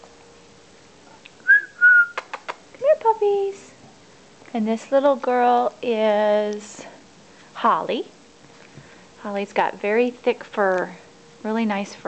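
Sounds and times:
person whistling: 1.4 - 2.3.

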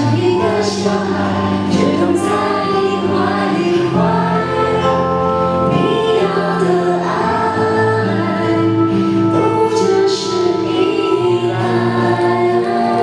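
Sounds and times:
woman singing: 0.0 - 13.0.

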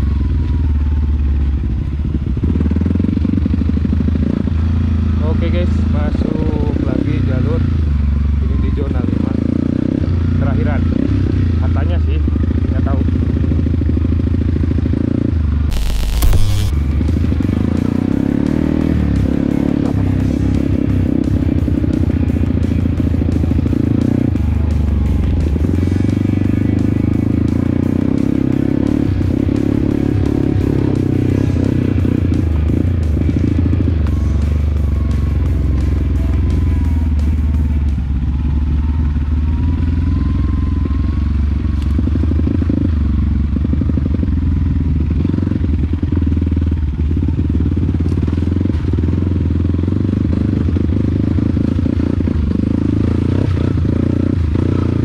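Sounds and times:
motorcycle engine running: 0.0 - 55.0
music playing: 15.7 - 18.0, 29.2 - 38.0.

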